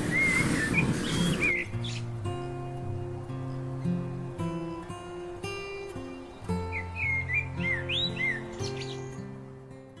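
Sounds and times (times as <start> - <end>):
bird chirps: 0.0 - 2.1, 6.0 - 9.3
acoustic guitar music: 0.0 - 10.0.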